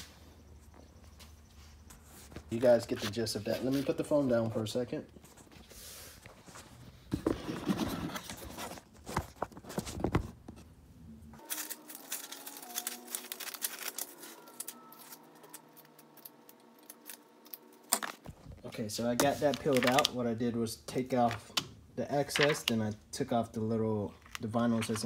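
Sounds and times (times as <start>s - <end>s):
vinyl crackling and tearing: 11.4s - 18.3s, 19.2s - 20.2s.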